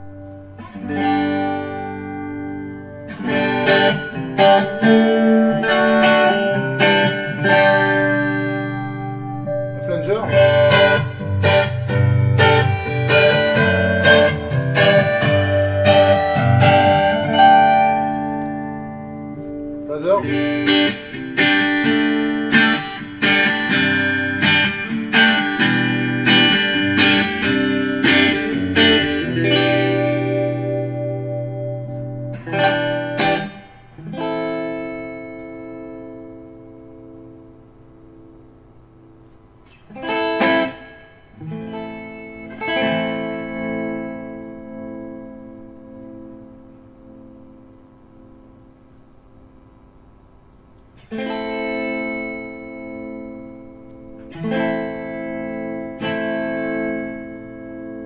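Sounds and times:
clean electric guitar: 0:00.0 - 0:58.0.

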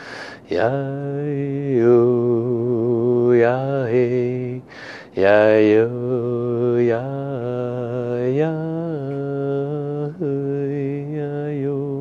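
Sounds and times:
quick breath: 0:00.0 - 0:00.5, 0:04.7 - 0:05.2
man chanting: 0:00.4 - 0:04.6, 0:05.2 - 0:12.0.

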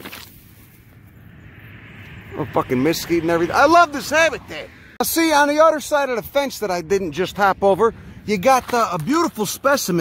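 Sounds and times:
low rumble: 0:00.4 - 0:05.0.

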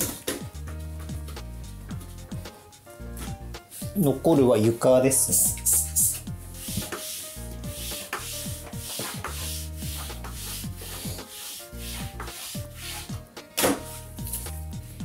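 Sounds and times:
floor wiper rubbing strokes: 0:05.6 - 0:13.2.

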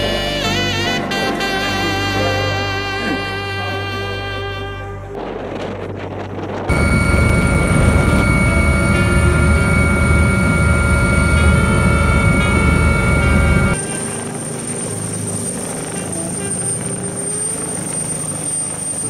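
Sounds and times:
helicopter rotor and engine rumble: 0:02.8 - 0:19.0
high turbine whine: 0:03.0 - 0:19.0.

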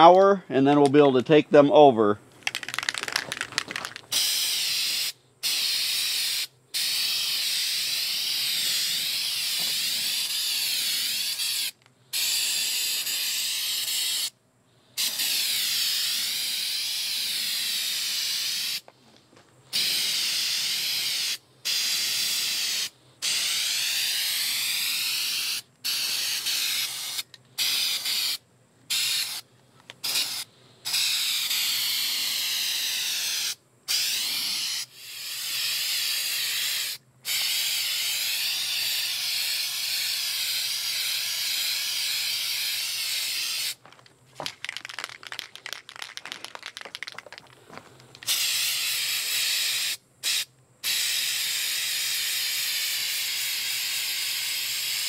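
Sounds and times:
aerosol can spraying: 0:02.5 - 0:14.3, 0:15.0 - 0:18.9, 0:19.7 - 0:43.8, 0:48.2 - 0:55.0.

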